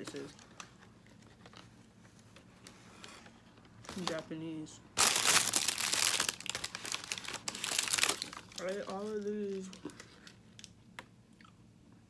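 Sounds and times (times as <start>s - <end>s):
plastic bag crinkling: 5.0s - 10.7s.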